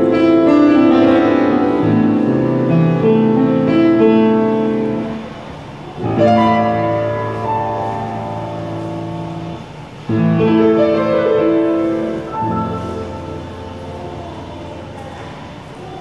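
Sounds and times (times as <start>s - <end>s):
piano chords: 0.0s - 16.0s.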